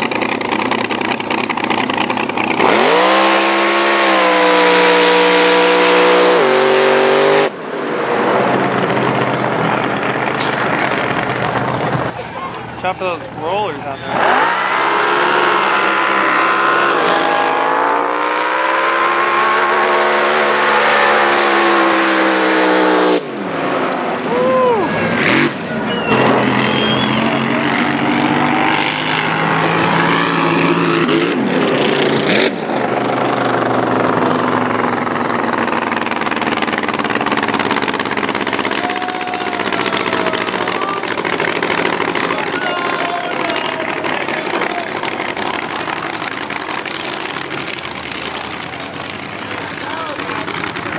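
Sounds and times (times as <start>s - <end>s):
drag boat engine running hard: 0.0s - 7.5s, 8.5s - 23.3s, 24.2s - 50.9s.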